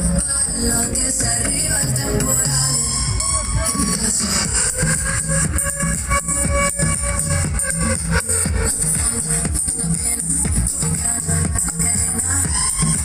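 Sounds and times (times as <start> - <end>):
electronic dance music: 0.0 - 13.0.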